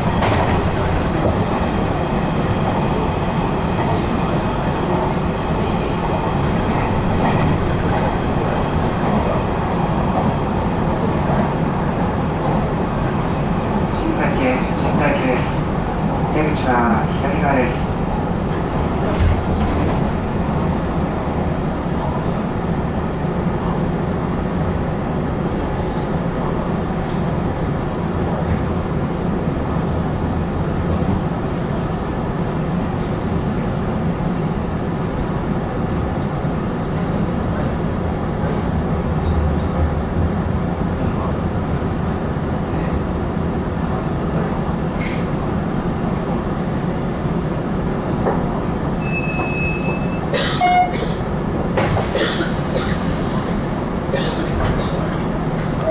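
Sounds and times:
train wheels rumbling on rail: 0.0 - 55.9.

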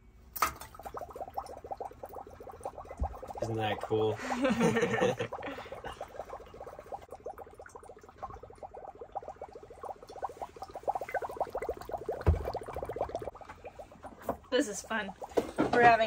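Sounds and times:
dry ice bubbling in water: 0.6 - 16.0
low thump: 12.2 - 12.8.

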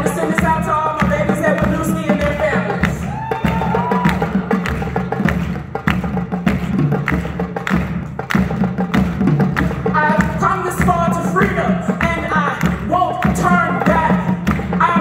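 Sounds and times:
drum ensemble playing: 0.0 - 15.0.

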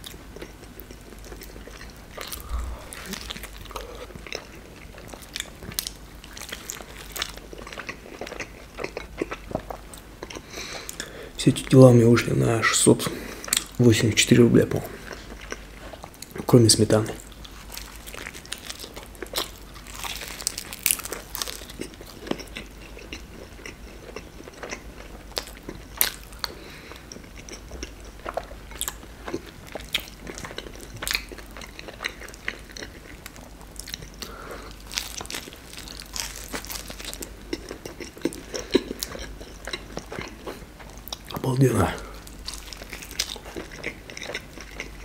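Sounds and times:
man chewing crunchy fried pastry: 0.0 - 11.4, 14.7 - 16.5, 17.1 - 45.0.

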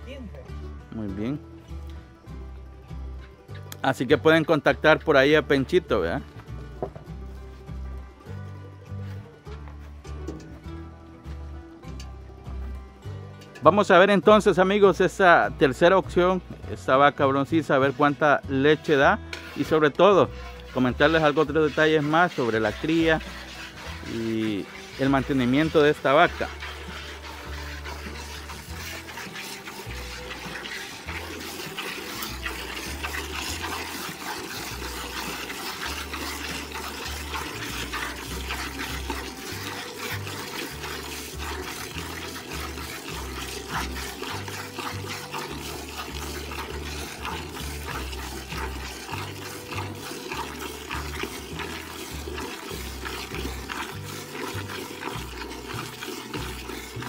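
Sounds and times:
background music with bass: 0.0 - 57.0
milk squirting into metal pail: 1.8 - 9.4, 11.9 - 57.0.

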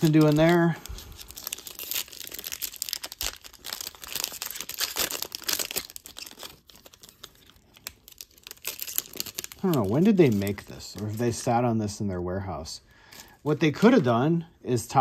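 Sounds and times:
foil wrapper tearing and crinkling: 0.0 - 11.5.

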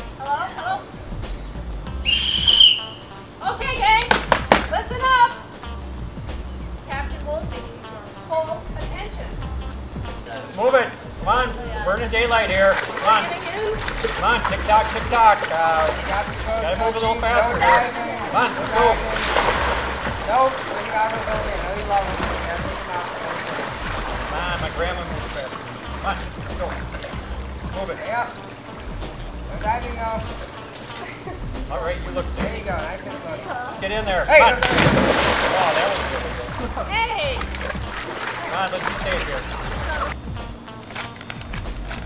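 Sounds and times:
sports whistle blast: 1.2 - 3.2
voices calling out: 8.6 - 40.2
water splashing in a pool: 12.3 - 31.4, 34.5 - 40.2.

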